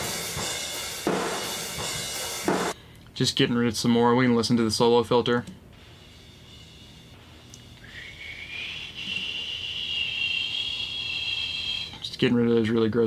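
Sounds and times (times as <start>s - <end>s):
high thin whistling hiss: 5.9s - 12.0s.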